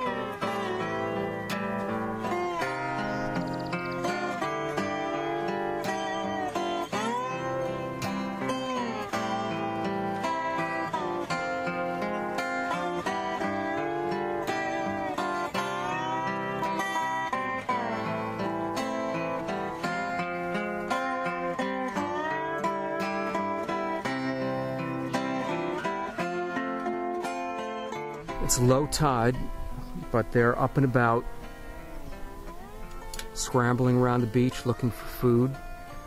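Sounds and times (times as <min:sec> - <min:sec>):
plucked guitar with sliding notes: 0:00.0 - 0:36.0.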